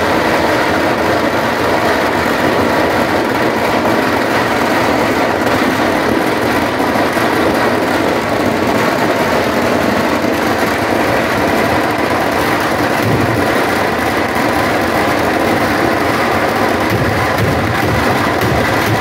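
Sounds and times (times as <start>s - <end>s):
ground fireworks going off: 0.0s - 19.0s.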